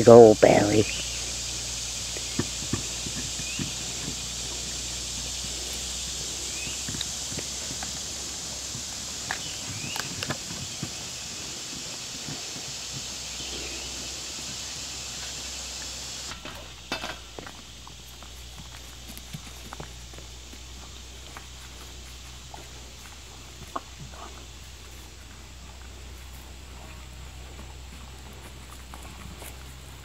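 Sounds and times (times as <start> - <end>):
animals licking and chewing: 0.0 - 30.0
steady high hiss: 0.0 - 30.0
paw steps: 0.8 - 30.0.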